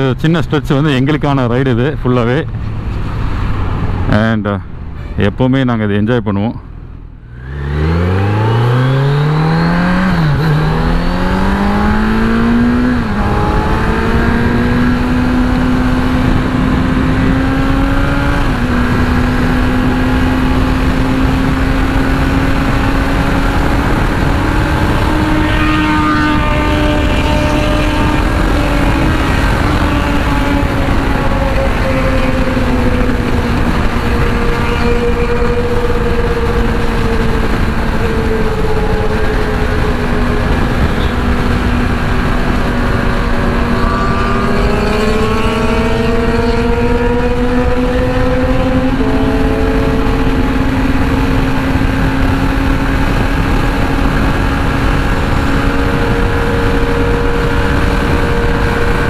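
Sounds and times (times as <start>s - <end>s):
motorcycle engine accelerating: 6.8s - 59.0s
wind noise on microphone: 7.6s - 59.0s.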